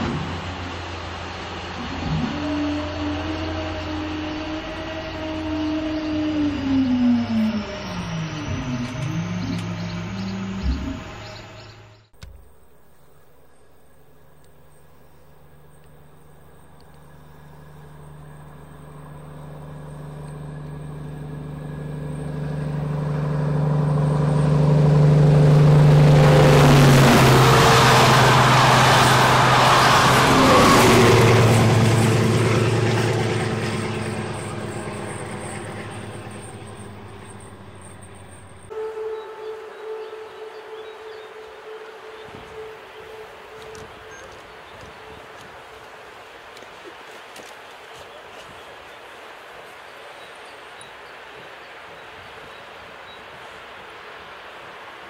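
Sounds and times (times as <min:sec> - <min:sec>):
steady hum: 0:00.0 - 0:46.9
diesel train engine drone: 0:00.0 - 0:48.2
rail noise: 0:00.0 - 0:55.0.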